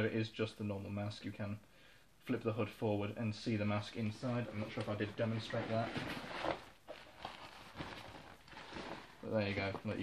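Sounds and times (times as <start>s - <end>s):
fabric rustling and strap knocks: 4.6s - 10.0s.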